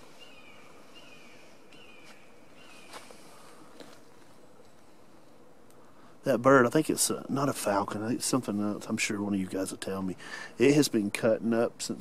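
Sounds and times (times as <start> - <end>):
bird calling: 0.0 - 3.7.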